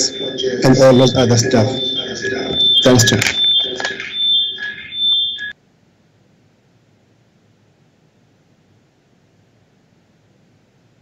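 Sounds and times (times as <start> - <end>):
high-pitched electronic tone: 0.0 - 5.6.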